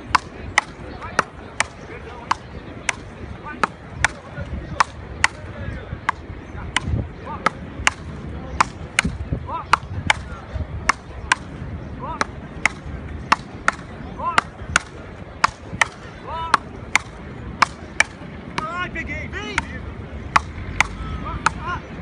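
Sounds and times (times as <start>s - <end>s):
players shouting: 0.0s - 22.0s
paddles striking a rubber ball: 0.1s - 18.7s, 19.5s - 21.7s.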